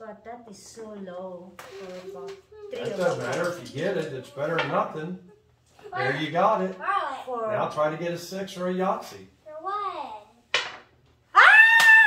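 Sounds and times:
person screaming excitedly: 0:11.4 - 0:12.0.

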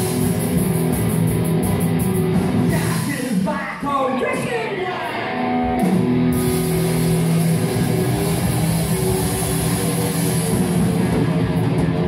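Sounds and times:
distorted electric guitars droning: 0:00.0 - 0:12.0.

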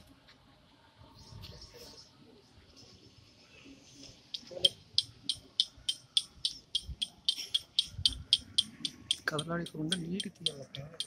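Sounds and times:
rhythmic sharp clicks: 0:04.3 - 0:11.0.

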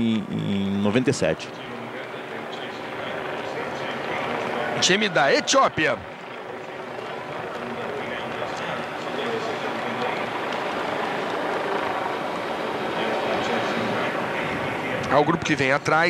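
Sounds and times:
faint voices of spectators: 0:00.0 - 0:16.0
wash of outdoor noise: 0:00.0 - 0:16.0.

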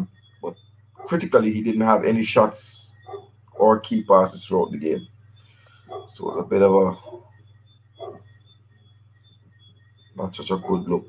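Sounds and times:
high-pitched chirps: 0:00.0 - 0:11.0
low electrical hum: 0:00.0 - 0:11.0.

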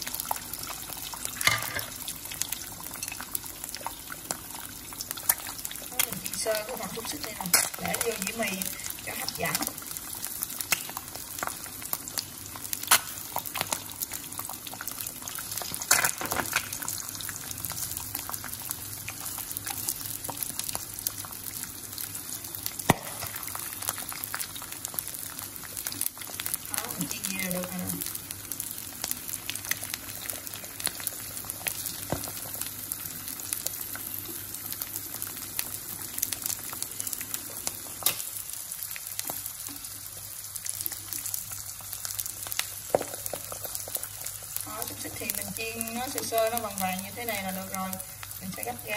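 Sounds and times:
food sizzling in oil: 0:00.0 - 0:48.9.

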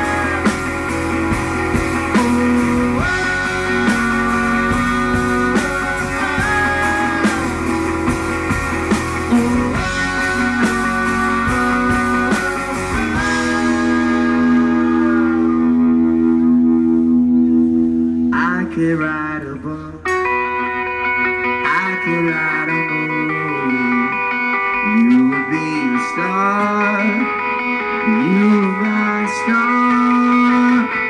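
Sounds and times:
drum kit: 0:00.0 - 0:18.3
electric guitars held notes: 0:00.0 - 0:31.0.

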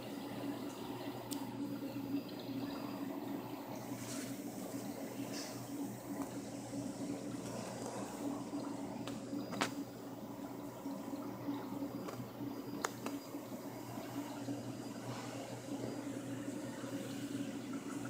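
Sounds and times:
circulating water: 0:00.0 - 0:18.0
low pump hum: 0:00.0 - 0:18.0.

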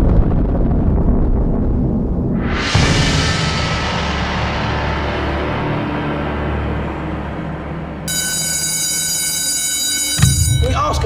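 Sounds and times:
low rumble: 0:00.0 - 0:08.1
high-pitched metallic ringing: 0:08.0 - 0:11.0.

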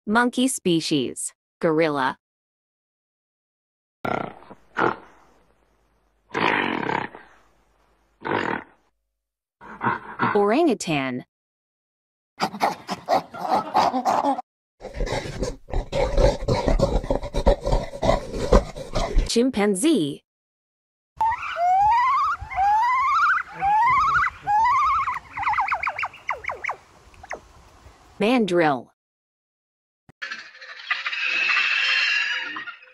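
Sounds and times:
gorilla rough calls: 0:04.1 - 0:05.2, 0:06.3 - 0:07.4, 0:08.2 - 0:08.8, 0:12.4 - 0:19.3, 0:21.2 - 0:26.7
chimpanzee calling: 0:12.4 - 0:14.4, 0:21.2 - 0:26.8.

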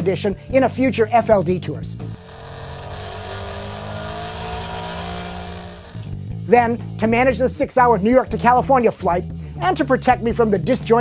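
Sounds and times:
car engine revving hard: 0:02.1 - 0:06.2.

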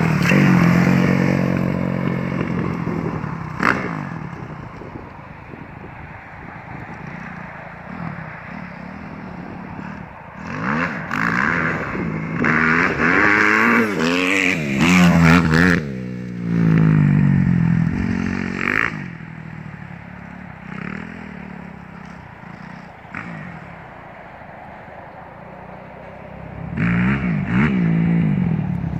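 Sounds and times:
motocross bike engine revving: 0:00.0 - 0:04.7, 0:07.0 - 0:24.1, 0:26.6 - 0:28.9.

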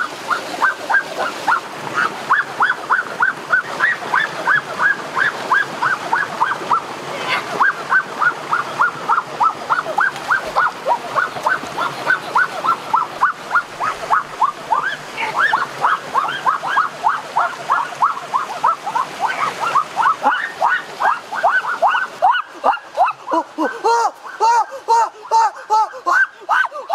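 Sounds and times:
flowing water rushing: 0:00.0 - 0:26.9.

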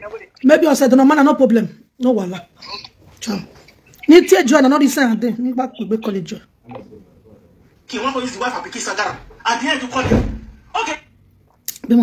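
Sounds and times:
breathy noise: 0:02.6 - 0:03.9.

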